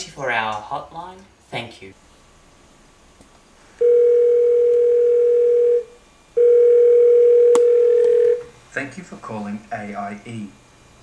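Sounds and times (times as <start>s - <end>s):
telephone ringback tone: 3.7s - 8.5s.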